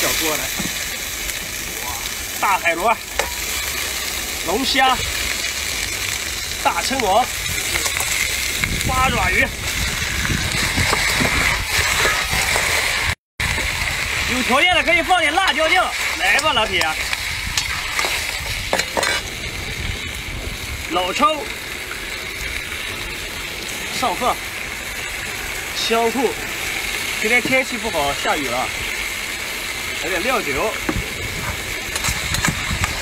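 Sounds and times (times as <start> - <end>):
burner low rumble: 0.0 - 31.9
seafood sizzling in a wok: 0.0 - 33.0.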